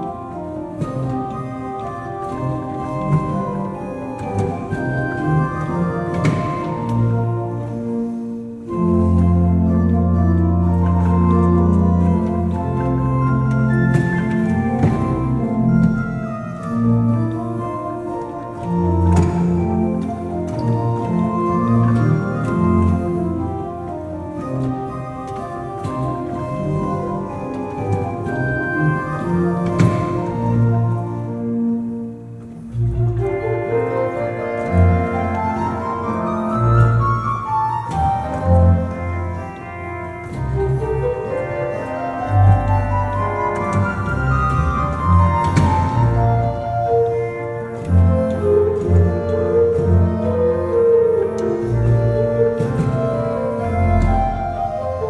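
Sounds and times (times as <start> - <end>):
pipe organ playing: 0.0 - 55.0.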